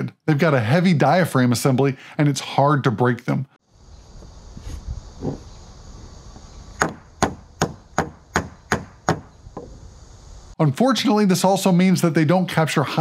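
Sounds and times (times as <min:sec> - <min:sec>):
faint steady hiss: 0:03.3 - 0:12.8
microphone knocking on wooden boards: 0:06.8 - 0:09.8.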